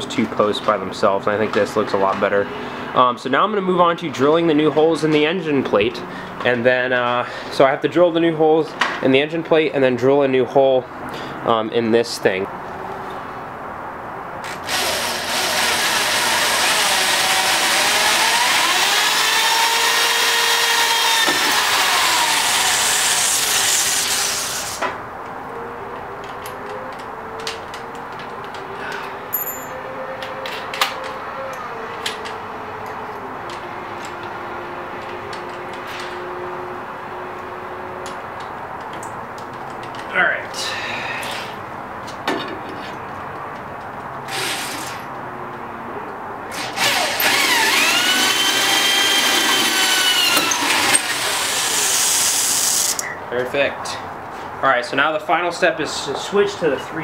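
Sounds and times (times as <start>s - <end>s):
electric drill boring metal: 14.5s - 24.8s, 44.3s - 45.0s, 46.6s - 53.0s.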